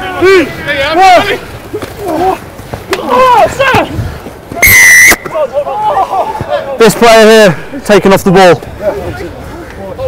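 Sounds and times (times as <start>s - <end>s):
players shouting: 0.0s - 10.0s
referee's whistle blast: 4.6s - 5.3s.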